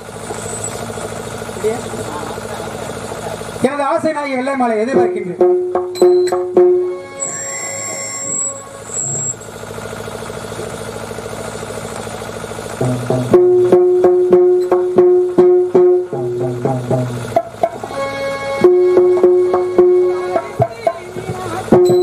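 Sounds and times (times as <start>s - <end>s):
fast even drum rattle: 0.0s - 22.0s
drum strikes: 4.8s - 9.4s, 12.8s - 22.0s
held musical note: 5.4s - 9.5s, 12.8s - 22.0s.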